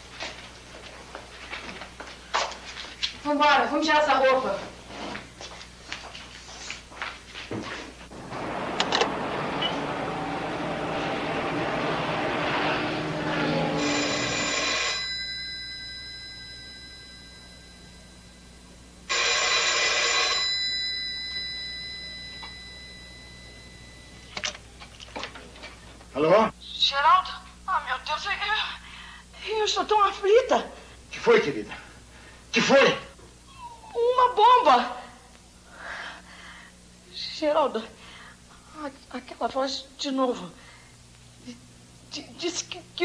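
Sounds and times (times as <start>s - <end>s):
rushing noise: 8.1s - 14.0s
telephone bell ringing: 13.6s - 24.4s.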